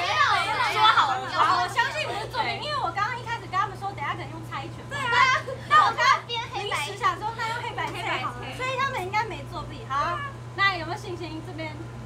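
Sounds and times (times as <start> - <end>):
women laughing: 4.9 - 6.2.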